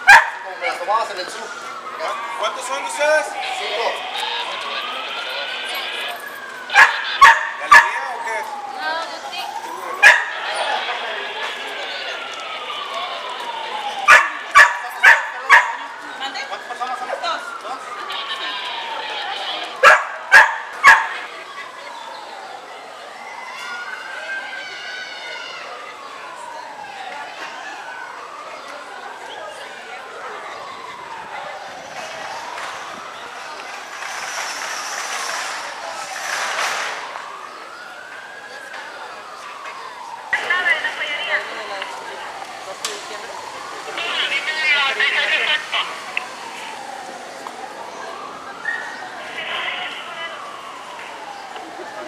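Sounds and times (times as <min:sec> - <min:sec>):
dog barking loudly: 0:00.0 - 0:00.4, 0:06.7 - 0:08.0, 0:10.0 - 0:10.4, 0:14.1 - 0:15.8, 0:19.8 - 0:21.2
warning siren wailing: 0:00.0 - 0:52.0.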